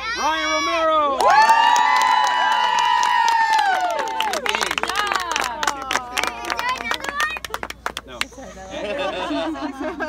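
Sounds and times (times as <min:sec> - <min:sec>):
children cheering: 0:01.2 - 0:07.5
hand clapping: 0:02.7 - 0:08.4.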